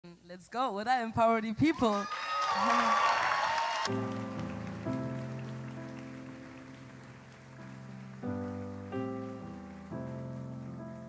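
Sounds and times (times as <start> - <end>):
audience applause and cheering: 1.9 - 10.7
keyboard sustained chords: 3.9 - 11.0.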